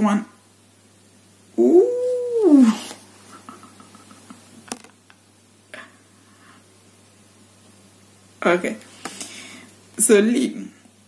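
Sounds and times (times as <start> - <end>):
woman's drawn-out ooh: 1.6 - 3.0.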